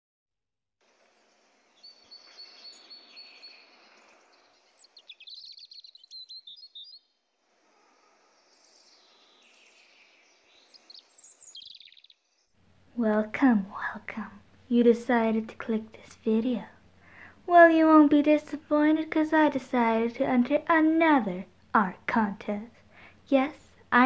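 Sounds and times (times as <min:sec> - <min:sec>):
steady outdoor hiss: 0:00.8 - 0:24.0
small birds chirping: 0:01.2 - 0:12.5.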